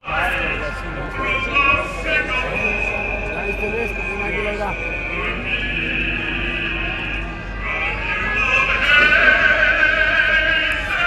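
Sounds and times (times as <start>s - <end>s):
murmur of large crowd: 0.0s - 11.0s
person singing over loudspeakers: 0.0s - 11.0s.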